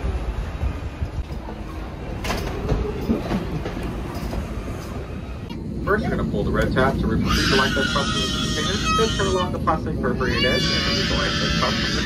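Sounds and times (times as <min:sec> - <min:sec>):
low cabin rumble: 0:00.0 - 0:12.0.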